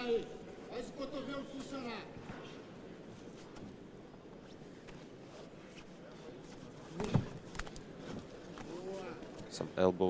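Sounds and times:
faint arena background noise: 0.0 - 10.0.

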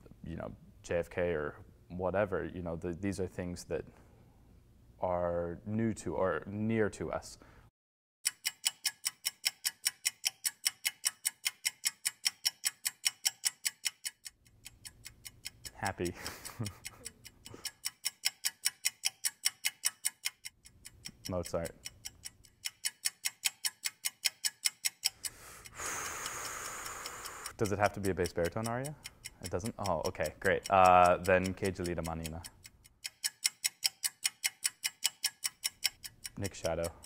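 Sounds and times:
steady ticking: 8.2 - 37.0
man's voice or laugh: 16.0 - 17.1.

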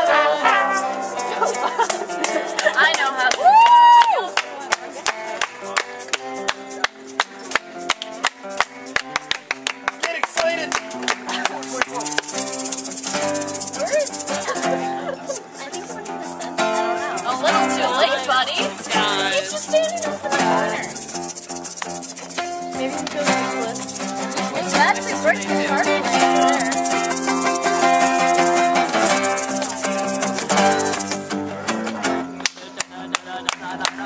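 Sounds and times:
person singing: 0.0 - 1.5, 13.8 - 21.4, 22.6 - 28.5, 32.5 - 34.0
ska band playing: 0.0 - 3.3, 9.9 - 32.2
acoustic guitar strumming: 0.0 - 33.9.

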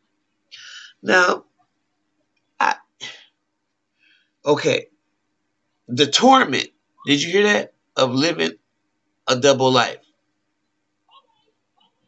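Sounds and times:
person speaking: 0.6 - 1.4, 2.6 - 3.2, 5.9 - 8.6, 9.3 - 10.0.

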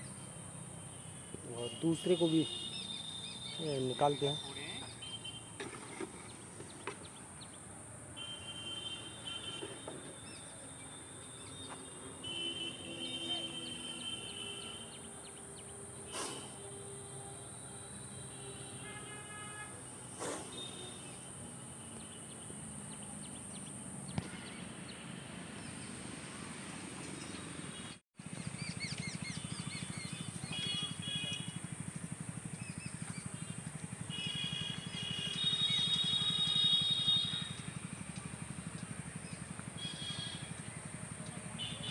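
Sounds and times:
birds chirping: 1.2 - 7.6, 27.0 - 41.9.

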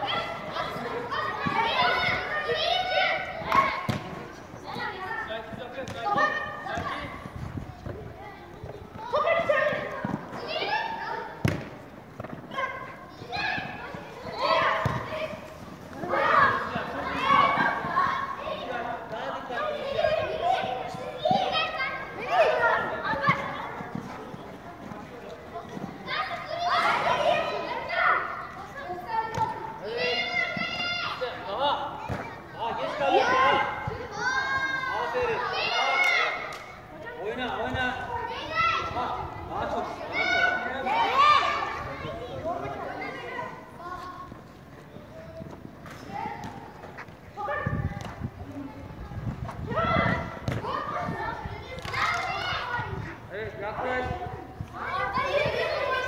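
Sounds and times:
children shouting while playing: 0.0 - 4.1, 8.9 - 11.6, 12.5 - 23.8, 26.1 - 37.4, 38.0 - 43.8, 49.6 - 53.2, 54.2 - 56.0
children shouting with echo: 0.0 - 4.1, 54.8 - 56.0
ball being kicked: 14.8 - 15.1.

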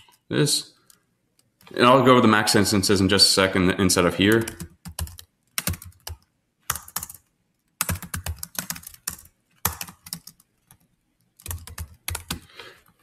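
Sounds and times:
computer keyboard typing: 4.3 - 12.5.

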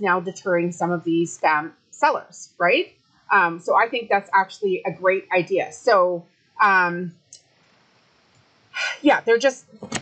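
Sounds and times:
woman speaking: 0.0 - 7.1, 8.8 - 10.0.

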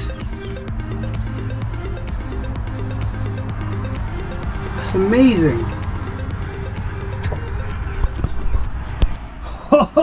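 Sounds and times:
low rumble: 0.0 - 9.7
background music: 0.0 - 10.0.

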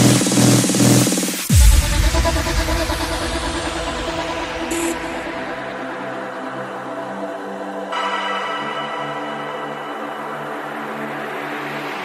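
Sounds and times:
deep bass boom: 1.5 - 5.8.

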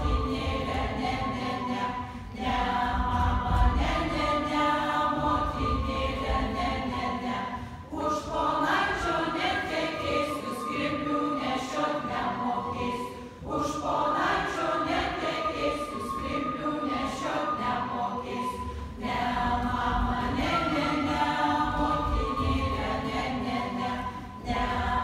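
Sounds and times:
group singing unaccompanied: 0.0 - 25.0.

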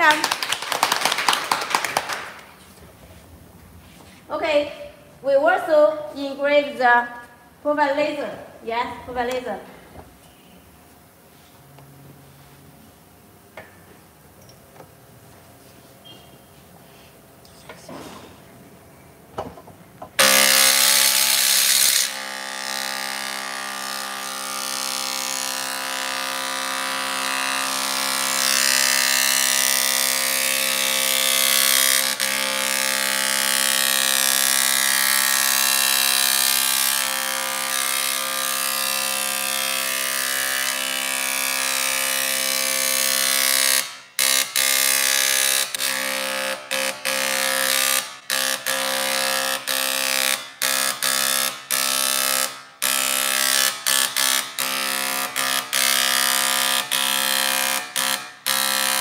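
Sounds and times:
dot peen marking machine buzzing: 20.2 - 59.0.

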